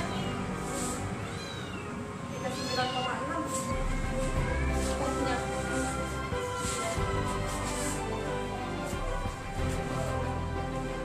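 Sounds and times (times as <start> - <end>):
cat meowing: 0.0 - 4.0
background music: 0.0 - 11.0.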